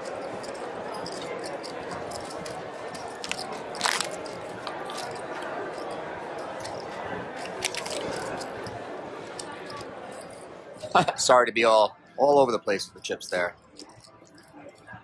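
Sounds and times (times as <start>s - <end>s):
casino chips clacking: 0.0s - 10.5s, 12.8s - 15.0s
murmur of casino floor: 0.0s - 15.0s.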